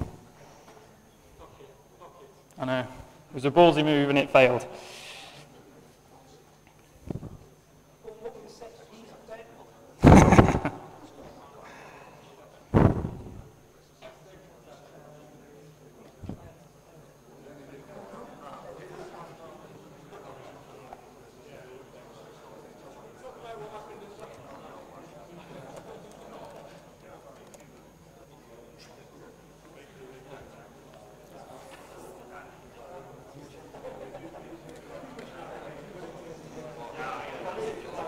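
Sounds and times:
murmur of voices: 0.0s - 38.0s
loud knocks near microphone: 12.8s - 13.4s.

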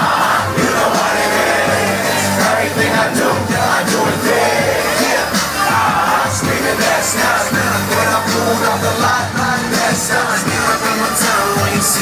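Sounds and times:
crowd yelling: 0.0s - 12.0s
live hip-hop music: 0.0s - 12.0s.

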